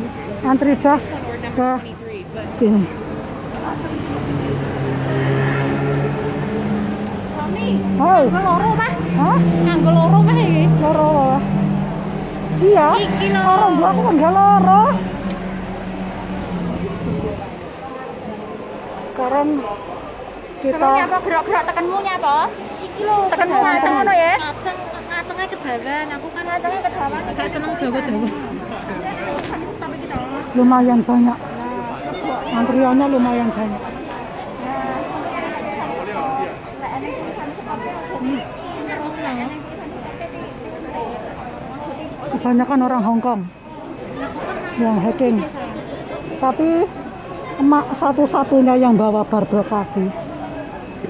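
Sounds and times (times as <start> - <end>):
crowd chatter: 0.0 - 51.0
diesel engine droning: 2.4 - 19.1.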